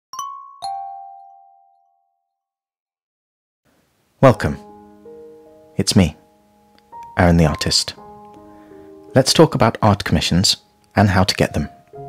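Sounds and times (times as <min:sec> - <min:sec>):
two-note ding-dong chime: 0:00.1 - 0:02.2.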